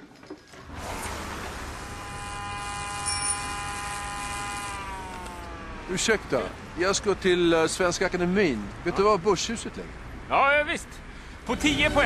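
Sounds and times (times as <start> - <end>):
electric motor whine: 0.8 - 6.1.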